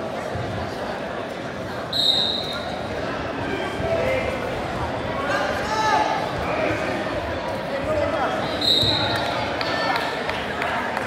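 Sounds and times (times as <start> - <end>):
spectators' voices echoing: 0.0 - 11.0
high-pitched squeak or whistle: 2.0 - 2.6.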